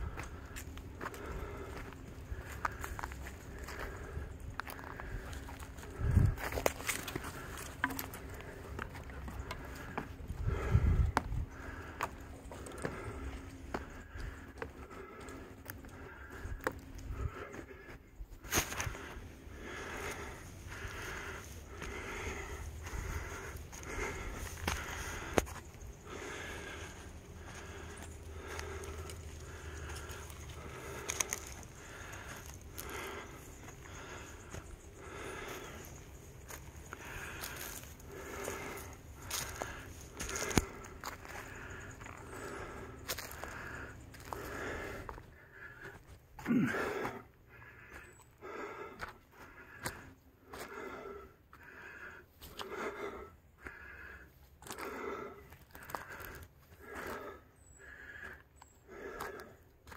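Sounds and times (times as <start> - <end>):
footsteps scuffing on dirt: 0.0 - 47.2
person breathing hard: 0.0 - 59.9.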